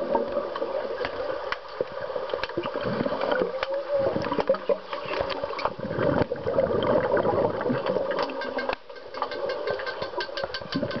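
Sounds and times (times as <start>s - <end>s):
muffled underwater churning and bubbles: 0.0s - 11.0s.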